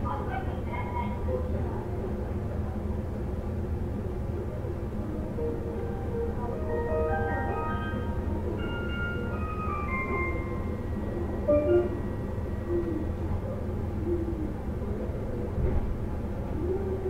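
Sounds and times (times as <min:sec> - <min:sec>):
train car rumble: 0:00.0 - 0:17.0
bell-like chime melody: 0:05.4 - 0:13.4.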